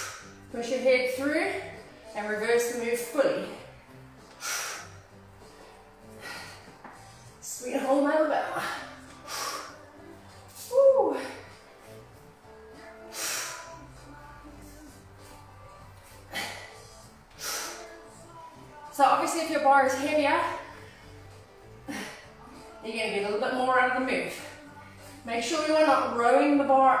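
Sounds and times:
woman breathing forcefully: 0.0s - 0.5s, 3.6s - 7.4s, 8.4s - 10.4s, 11.1s - 18.4s, 20.6s - 22.7s
faint background music: 0.0s - 27.0s.

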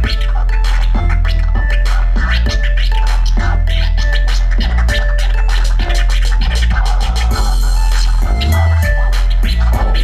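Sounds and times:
loud beat with heavy bass: 0.0s - 10.0s
turntable scratching: 0.0s - 10.0s.

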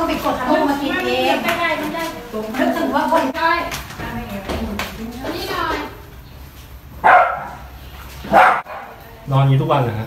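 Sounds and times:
dog barking: 7.0s - 9.0s.

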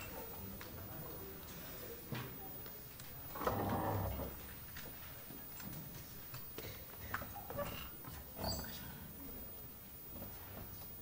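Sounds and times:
brief squeaks: 8.4s - 8.8s.

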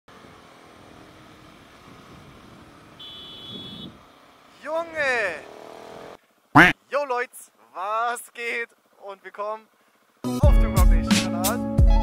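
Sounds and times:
faint motorcycle riding: 0.1s - 11.5s
loud voice exclamation: 6.6s - 6.8s.

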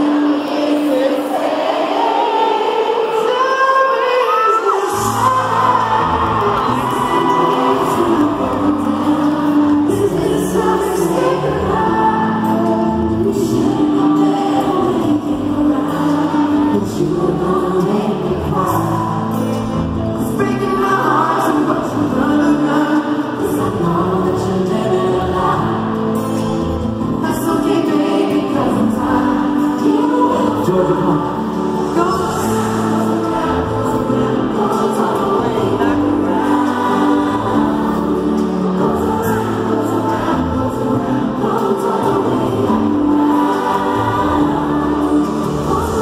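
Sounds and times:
crowd singing along: 0.0s - 46.0s
acoustic guitar: 3.6s - 46.0s.

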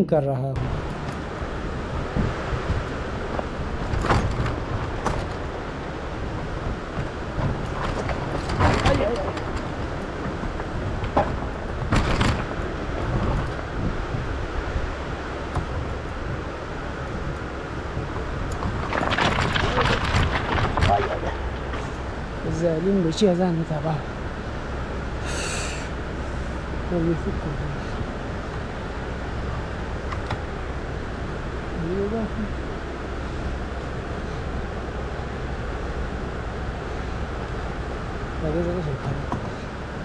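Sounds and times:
wind rumble on microphone: 0.6s - 40.0s.

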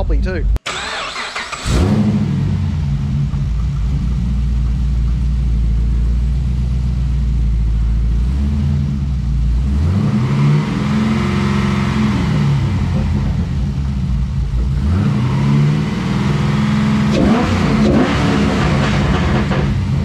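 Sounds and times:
car engine revving: 0.7s - 20.0s
exhaust crackles and pops: 1.6s - 9.8s, 11.8s - 15.4s, 17.1s - 20.0s.

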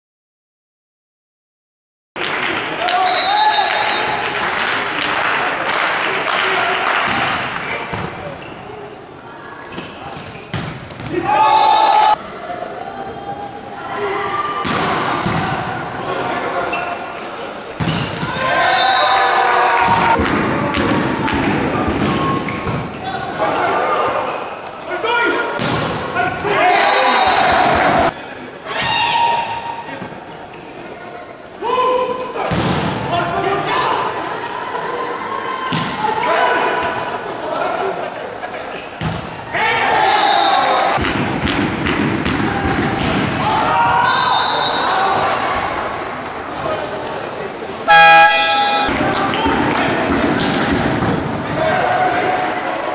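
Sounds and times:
players shouting: 11.1s - 16.8s, 18.1s - 29.9s, 39.3s - 41.0s, 42.0s - 47.0s, 47.8s - 52.9s
volleyball hit: 41.0s - 44.0s, 47.9s - 51.3s.

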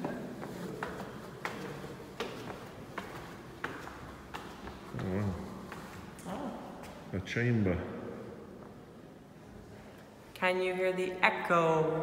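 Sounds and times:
footsteps on stone tiles: 0.0s - 6.3s.

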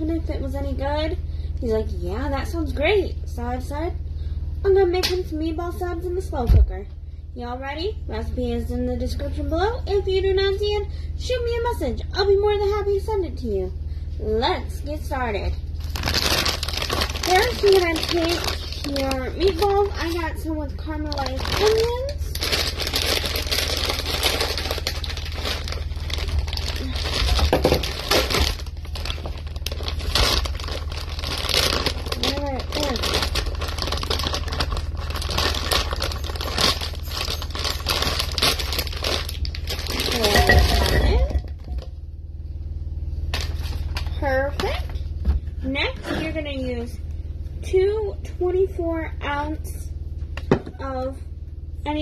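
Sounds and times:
plastic bag crinkling: 15.8s - 41.9s.

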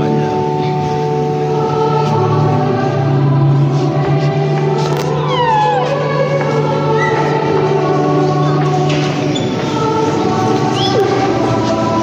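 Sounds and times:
choir singing held notes: 0.8s - 12.0s.

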